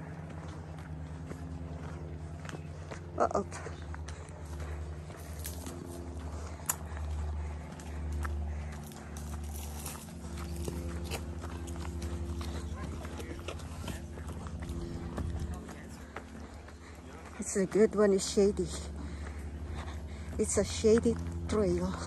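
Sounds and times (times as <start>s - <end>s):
footsteps on dirt trail: 0.0s - 22.0s.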